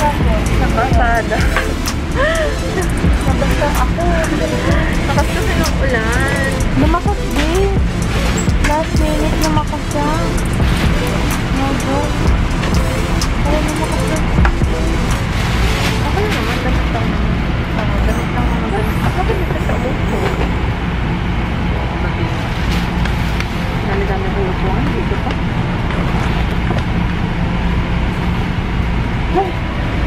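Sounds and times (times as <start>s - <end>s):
indistinct voices: 0.0s - 27.5s
train rumble inside carriage: 0.0s - 30.0s.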